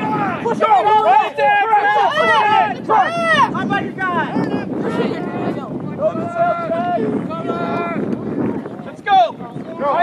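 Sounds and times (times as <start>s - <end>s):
people shouting: 0.0s - 8.1s
wind on microphone: 0.0s - 10.0s.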